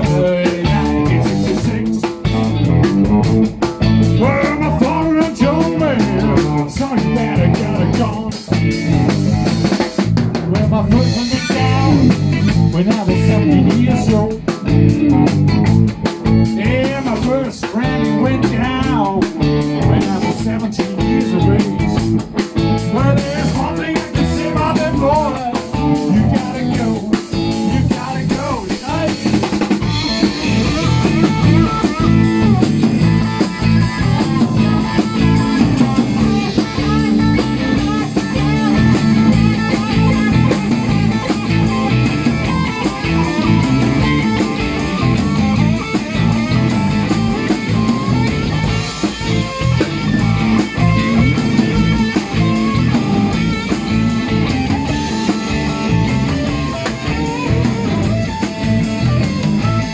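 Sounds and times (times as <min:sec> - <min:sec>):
drum kit beat: 0:00.0 - 0:59.9
electric bass: 0:00.0 - 0:59.9
electric guitar: 0:00.0 - 0:59.9.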